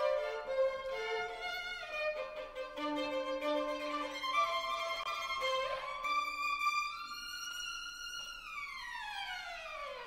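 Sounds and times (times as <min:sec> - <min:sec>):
violin glissando: 0:00.0 - 0:10.0.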